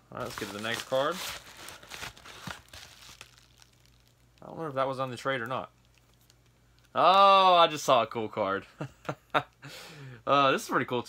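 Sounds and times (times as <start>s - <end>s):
card packaging crinkling: 0.1s - 4.6s.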